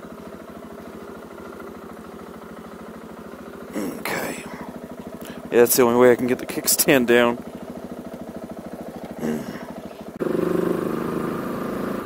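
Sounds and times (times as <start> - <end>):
motorcycle engine idling: 0.0 - 12.0
motorcycle engine under way: 0.0 - 12.0.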